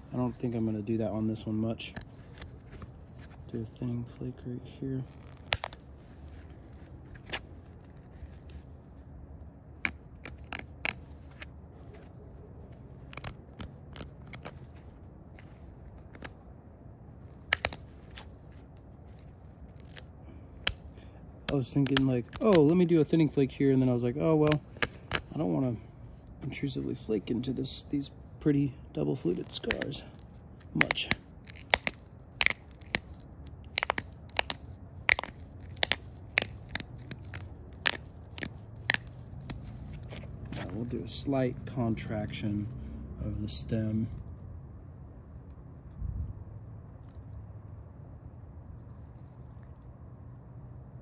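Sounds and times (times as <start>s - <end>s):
antler clicking and snapping on stone: 5.2s - 8.0s, 9.8s - 12.0s, 12.7s - 16.4s, 17.4s - 18.6s, 19.2s - 25.6s, 29.2s - 41.2s.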